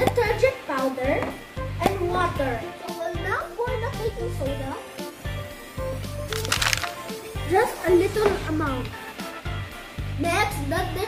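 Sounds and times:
background music: 0:00.0 - 0:11.0
powder pouring into plastic tub: 0:06.2 - 0:07.1.

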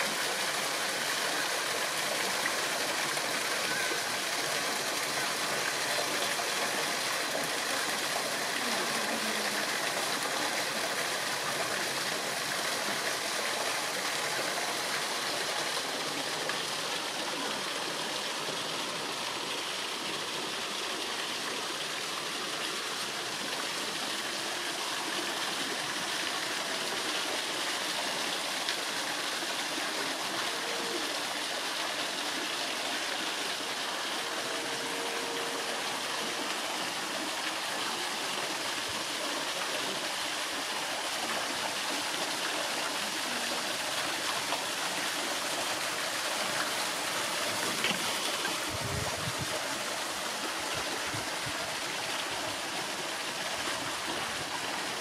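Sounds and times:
stream water running over rocks: 0:00.0 - 0:55.0.

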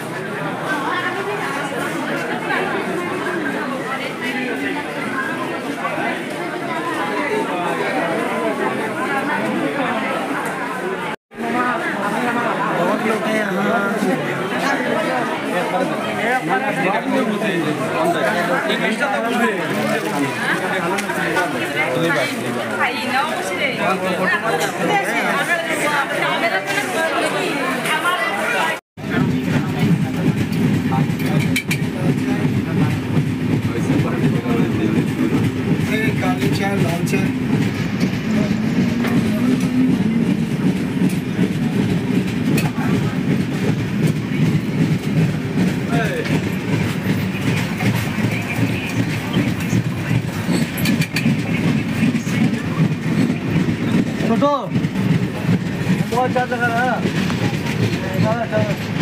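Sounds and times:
passenger's voice: 0:00.0 - 0:59.0
train wheels rumbling on track: 0:29.0 - 0:59.0.

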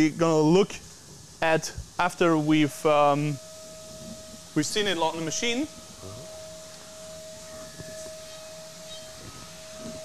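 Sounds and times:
milling machine spindle whine: 0:00.0 - 0:10.0.

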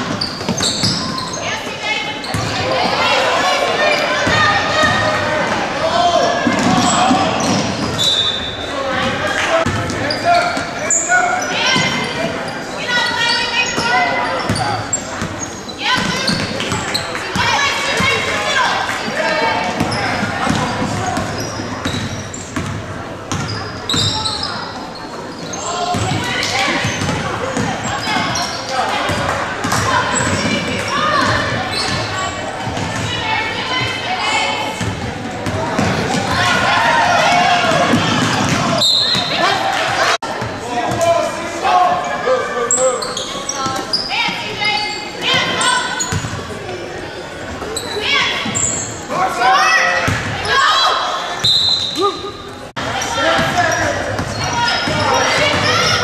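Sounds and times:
people shouting and talking: 0:00.0 - 0:56.0.

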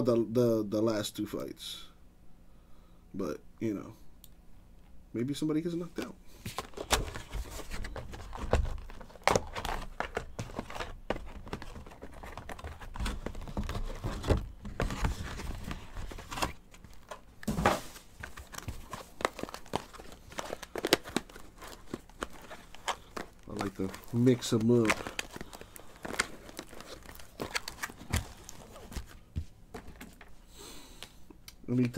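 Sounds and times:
cardboard box crinkling and tearing: 0:06.6 - 0:29.2.

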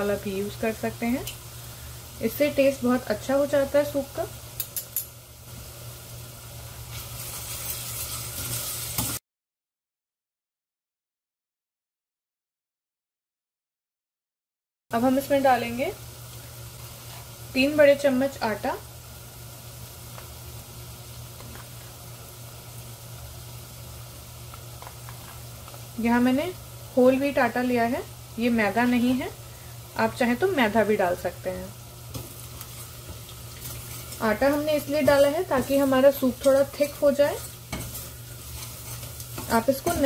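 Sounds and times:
onions sizzling in hot oil: 0:00.0 - 0:09.2, 0:14.9 - 0:40.0.

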